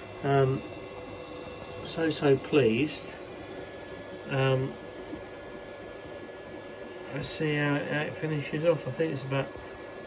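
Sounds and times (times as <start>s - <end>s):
faint steady whine: 0.0s - 10.0s
fan hiss: 0.0s - 10.0s.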